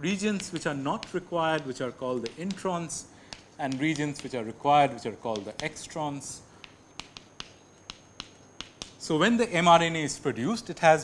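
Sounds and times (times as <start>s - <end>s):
chalk tapping on chalkboard: 0.1s - 9.1s.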